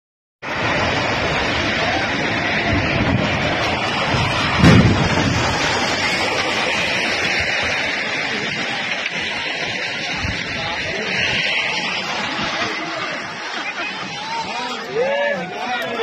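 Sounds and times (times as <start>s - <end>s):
bridge collapsing roar: 0.4s - 16.0s
deep rumble: 0.4s - 16.0s.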